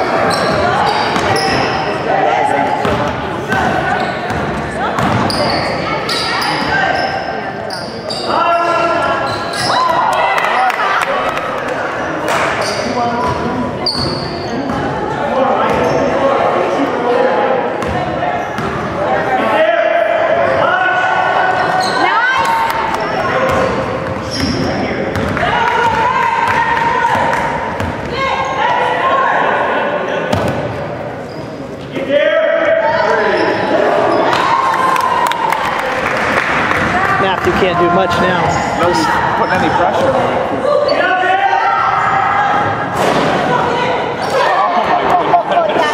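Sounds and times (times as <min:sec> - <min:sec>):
echoing voices: 0:00.0 - 0:45.9
basketball bouncing on gym floor: 0:02.8 - 0:05.4, 0:23.4 - 0:28.2.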